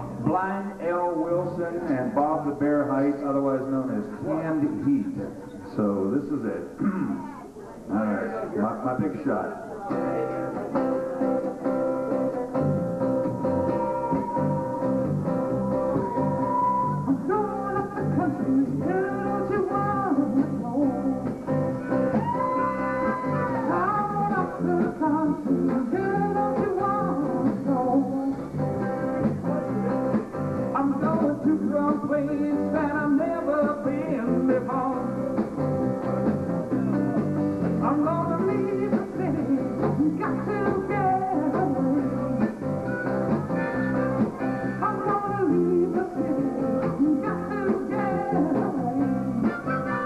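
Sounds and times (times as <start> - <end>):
electric guitar: 9.1 - 50.0
acoustic guitar strumming: 9.9 - 50.0
harmonica bending notes: 49.5 - 50.0.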